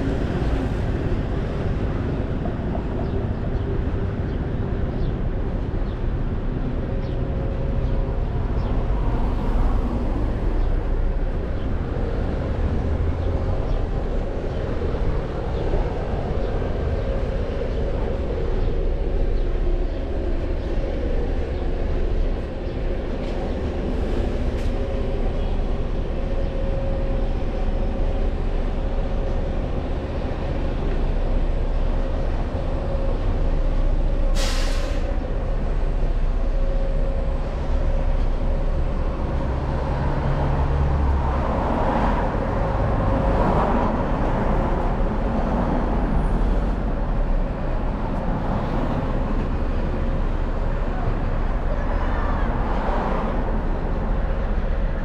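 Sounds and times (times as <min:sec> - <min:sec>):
heavy road traffic rumble: 0:00.0 - 0:55.0.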